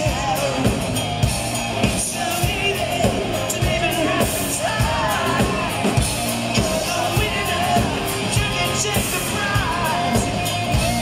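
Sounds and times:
man singing: 0.0 - 1.2, 1.8 - 11.0
bass guitar: 0.0 - 11.0
drum beat: 0.0 - 11.0
electric guitar: 0.0 - 11.0.

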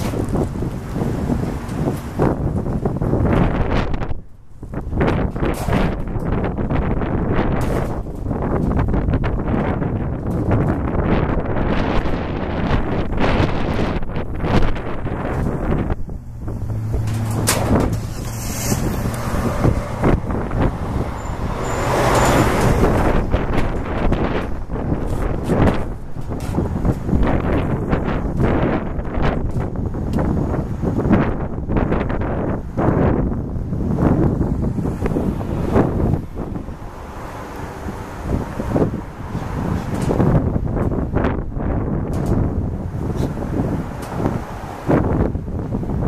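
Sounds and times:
road noise: 0.0 - 46.0
vehicle engine hum: 0.0 - 46.0
wind buffeting microphone: 0.0 - 46.0.

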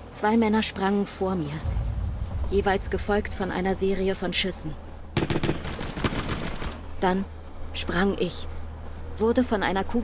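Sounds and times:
rapid gunshots: 5.2 - 6.8.

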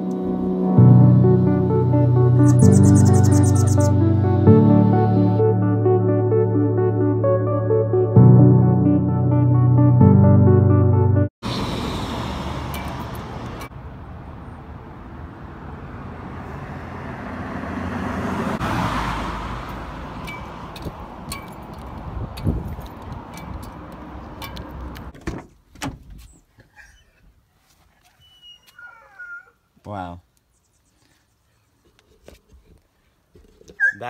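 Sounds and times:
cars driving past: 11.4 - 25.1.

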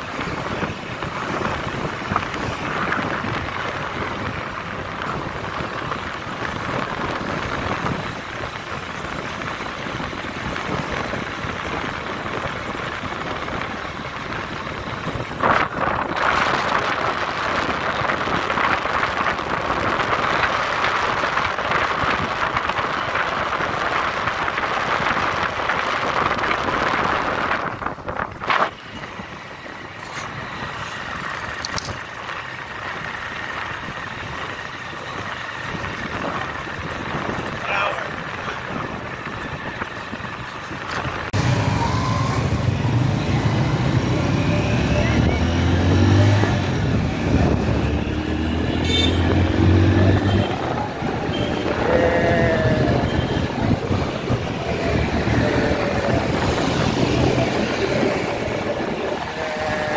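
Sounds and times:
motorbike engine and road noise: 0.0 - 59.9.

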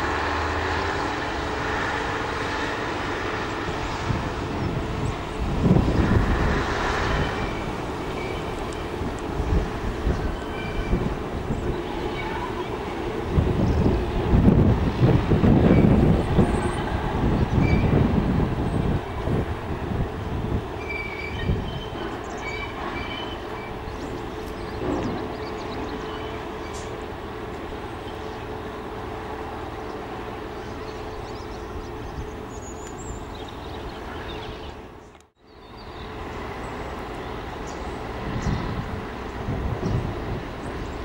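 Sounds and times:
diesel locomotive engine drone: 0.0 - 41.0.

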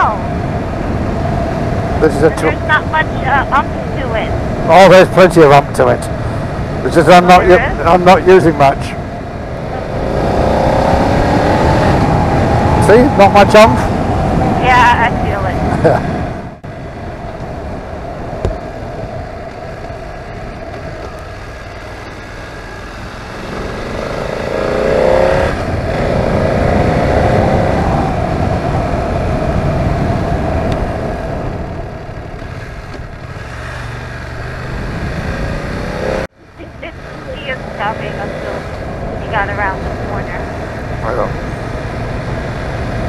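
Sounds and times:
motorcycle engine revving: 0.0 - 16.6, 17.3 - 43.0
wind and road noise: 0.0 - 43.0.

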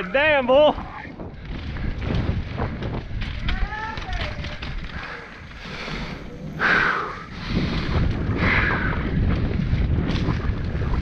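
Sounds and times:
bike tyres and frame rattling: 0.0 - 11.0
wind buffeting microphone: 0.0 - 11.0.

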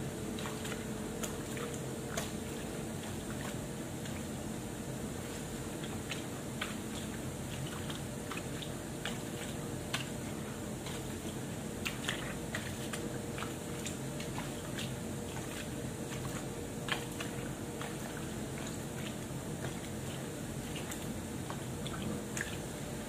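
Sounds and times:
small water splashes: 0.2 - 4.5, 5.2 - 23.0
wet fabric squelching: 0.2 - 4.5, 5.1 - 23.0.

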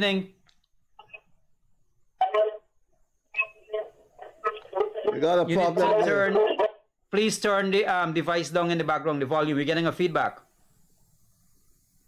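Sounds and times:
person speaking over phone: 2.2 - 2.6, 3.4 - 7.4.

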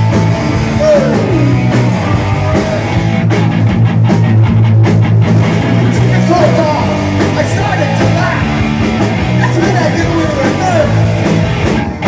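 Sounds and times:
fast drum beat: 0.0 - 12.0
punk rock band playing live: 0.0 - 12.0.

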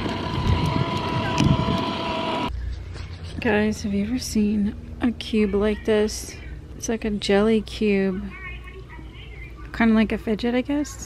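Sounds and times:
wind rumbling on microphone: 0.0 - 2.5
high-pitched whine: 0.0 - 2.6.

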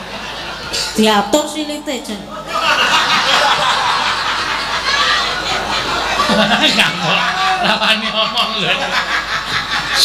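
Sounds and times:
people laughing: 0.0 - 0.8, 2.3 - 10.0
people talking: 0.8 - 3.0, 4.8 - 9.2.

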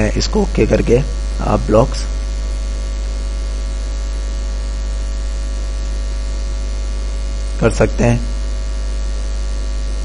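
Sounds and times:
constant hiss: 0.0 - 10.0
electrical mains hum: 0.0 - 10.0.

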